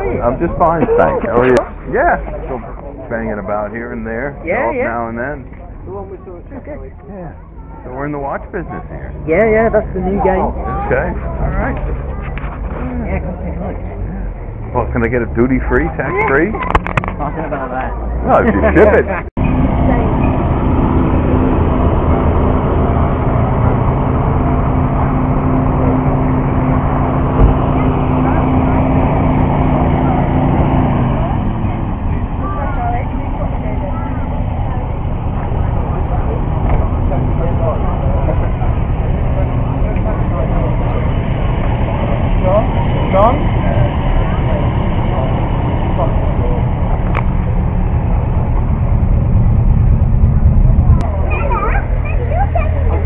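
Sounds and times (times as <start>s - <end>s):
crowd chatter: 0.0s - 53.0s
vehicle engine running: 0.0s - 53.0s.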